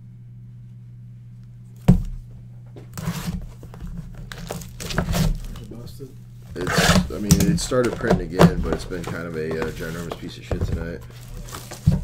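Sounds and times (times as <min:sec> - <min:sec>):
shrink wrap tearing and crinkling: 0:03.0 - 0:10.4, 0:11.0 - 0:12.0.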